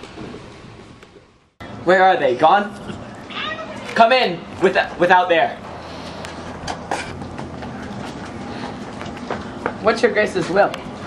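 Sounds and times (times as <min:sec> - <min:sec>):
outdoor rumble and hiss: 0:00.0 - 0:11.0
footsteps on concrete steps: 0:03.3 - 0:11.0.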